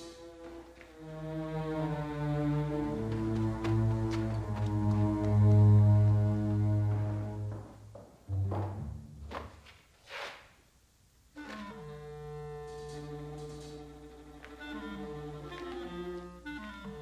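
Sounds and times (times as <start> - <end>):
suspenseful orchestral music: 0.0 - 9.3, 11.4 - 17.0.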